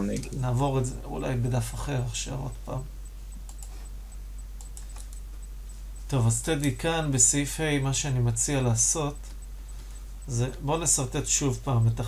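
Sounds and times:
low electrical hum: 0.0 - 12.0
computer keyboard clicks: 3.4 - 3.8, 4.6 - 5.3.

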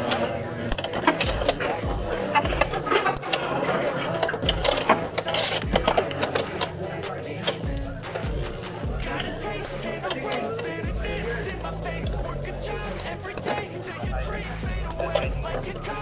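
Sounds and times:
background music: 0.0 - 16.0
sharp clicks of tops hitting: 0.0 - 16.0
spinning tops clashing: 0.0 - 16.0.

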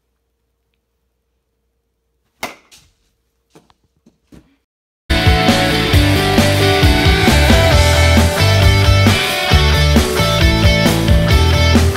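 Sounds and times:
bat cracking baseball: 2.4 - 2.9
loud rock music: 5.1 - 11.9.

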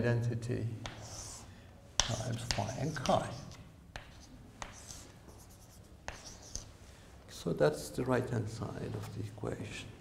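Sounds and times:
chalk scratching on blackboard: 0.8 - 6.7
chalk tapping on board: 0.8 - 6.7.

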